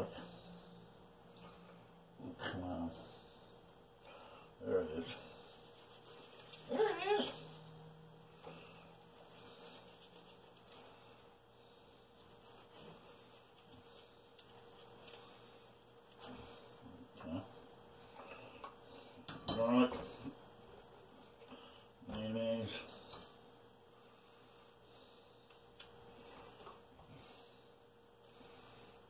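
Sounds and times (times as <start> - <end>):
dog whining: 6.7 - 7.5.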